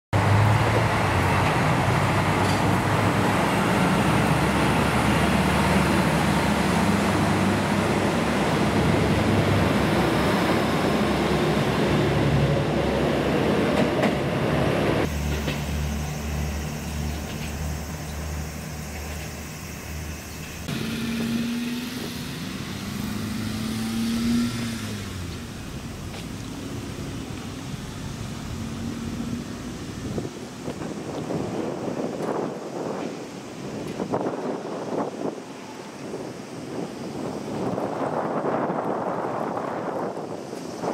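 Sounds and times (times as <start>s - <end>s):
diesel railcar engines running: 0.2s - 23.1s, 24.7s - 40.9s.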